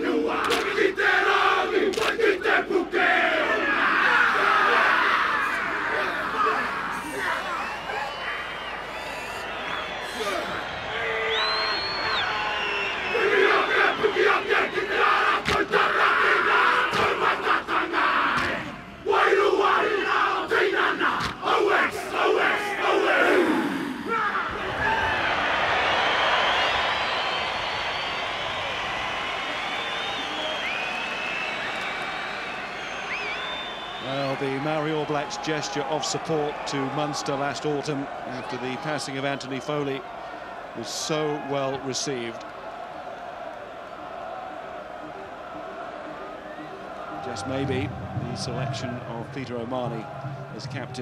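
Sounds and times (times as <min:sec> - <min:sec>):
men shouting a chant in unison: 0:00.0 - 0:07.8, 0:13.1 - 0:25.1
crowd cheering and whistling: 0:00.0 - 0:51.0.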